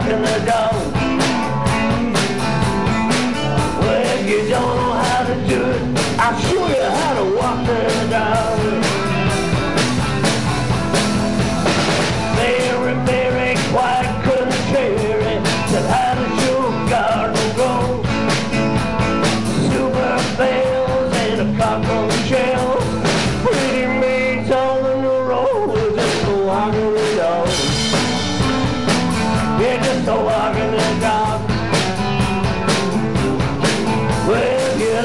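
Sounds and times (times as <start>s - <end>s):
drums playing steady beat: 0.0s - 35.0s
electric bass: 0.0s - 35.0s
electric guitars: 0.0s - 35.0s.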